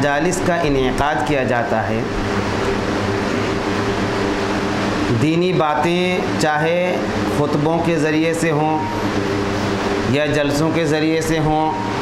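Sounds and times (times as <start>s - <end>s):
steady machine hum: 0.0s - 12.0s.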